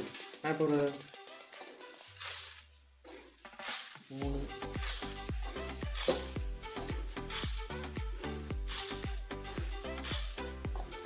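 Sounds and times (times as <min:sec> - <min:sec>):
sugar pouring into water: 0:08.5 - 0:10.6.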